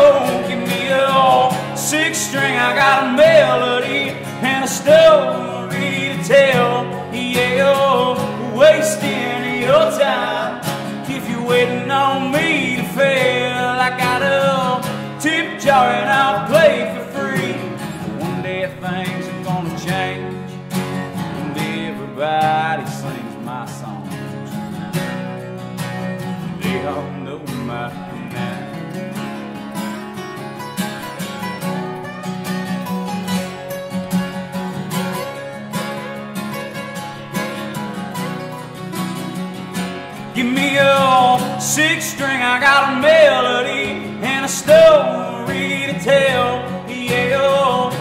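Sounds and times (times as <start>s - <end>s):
picked guitar lead line: 0.0s - 48.0s
strummed acoustic guitar: 0.0s - 48.0s.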